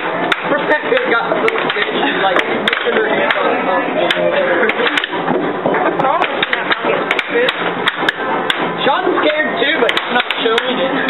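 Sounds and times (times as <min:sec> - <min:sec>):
mallets hitting air hockey puck: 0:00.0 - 0:05.4, 0:06.2 - 0:08.7, 0:09.8 - 0:10.8
puck clacking off rails: 0:00.0 - 0:08.7.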